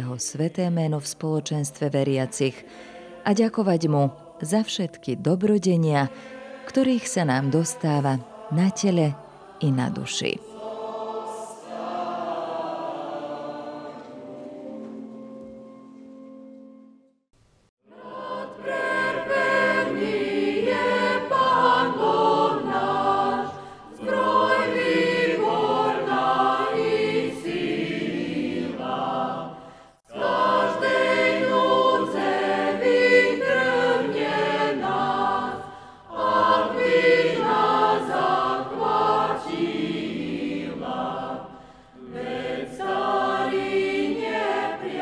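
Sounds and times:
choir singing: 0:01.2 - 0:16.3, 0:17.8 - 0:45.0.

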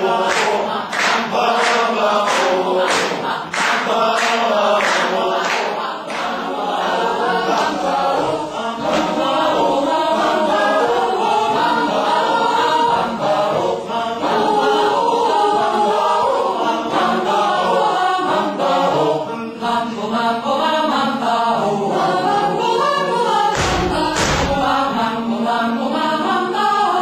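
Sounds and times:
choir singing in harmony: 0:00.0 - 0:27.0.

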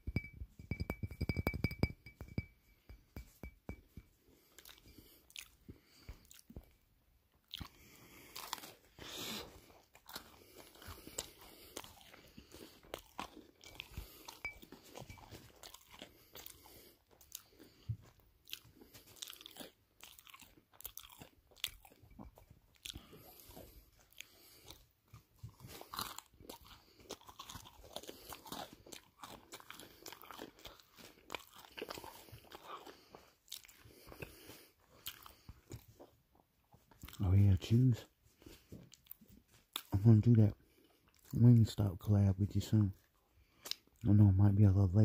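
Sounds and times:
crunchy bites and chewing: 0:04.3 - 0:06.8, 0:07.4 - 0:36.1, 0:43.4 - 0:44.0.

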